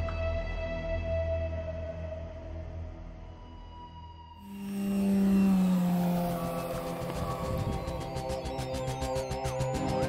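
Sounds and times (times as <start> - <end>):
background music: 0.0 - 10.0
loud low hum: 4.4 - 10.0.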